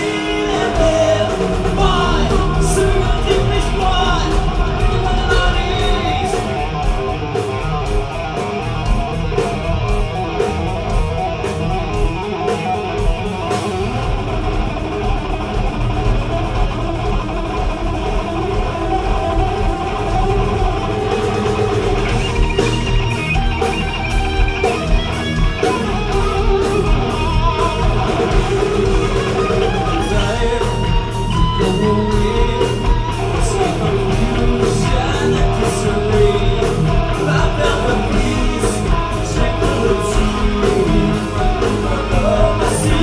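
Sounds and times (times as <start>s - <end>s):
bass guitar: 0.0s - 43.0s
drums: 0.0s - 43.0s
electric guitar: 0.0s - 43.0s.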